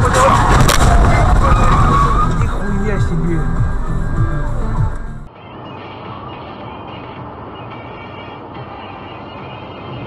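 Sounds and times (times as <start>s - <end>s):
sharp cracks: 0.0s - 2.6s
loud crunching collision: 0.0s - 3.0s.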